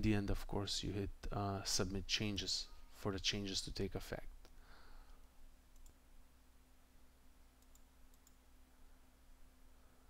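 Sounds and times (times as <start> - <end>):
faint steady hum: 0.0 - 10.0
computer mouse clicks: 5.7 - 6.0, 7.6 - 8.4.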